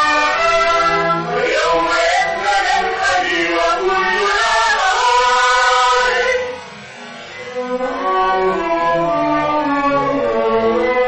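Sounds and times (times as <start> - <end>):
vocal trio singing: 0.0 - 6.8
orchestral accompaniment: 0.0 - 11.0.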